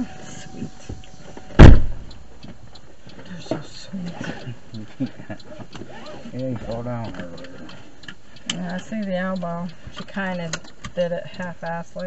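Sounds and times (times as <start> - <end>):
heavy thump in car cabin: 1.5 - 2.1.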